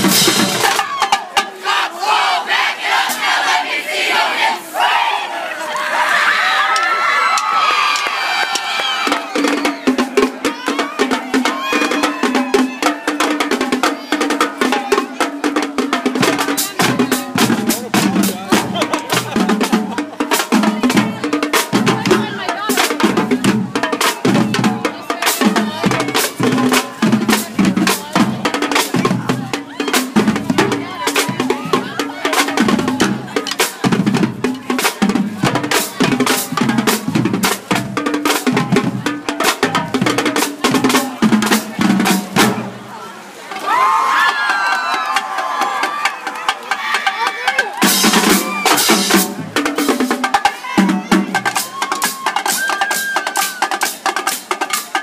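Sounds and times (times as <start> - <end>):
bass drums: 0.0 - 1.0, 15.8 - 42.8, 47.8 - 52.0
snare drums with rolls: 0.0 - 3.6, 6.6 - 55.0.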